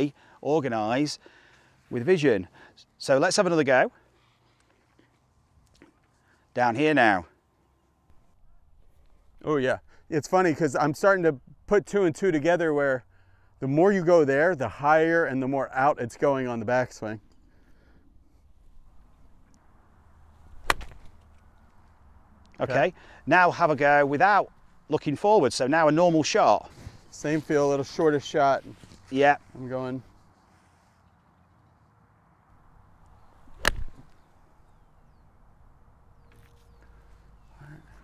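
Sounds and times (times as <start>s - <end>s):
golf club striking ball: 20.5s - 21.2s, 33.5s - 34.2s.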